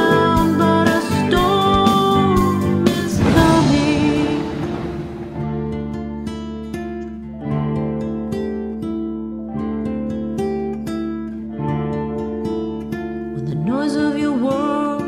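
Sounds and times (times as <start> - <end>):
person singing: 0.0 - 5.3, 13.4 - 15.0
fingerpicked acoustic guitar: 0.0 - 15.0.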